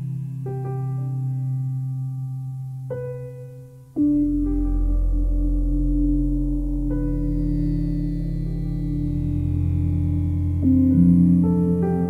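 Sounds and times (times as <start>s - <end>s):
sustained synthesizer chord: 3.9s - 12.0s
deep bass note: 4.0s - 12.0s.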